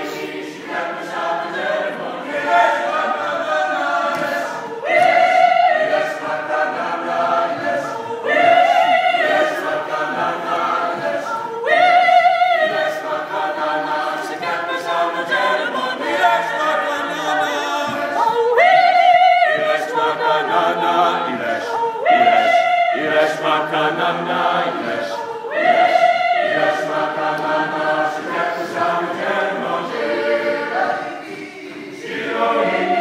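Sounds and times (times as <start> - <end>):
a cappella choir singing: 0.0 - 33.0.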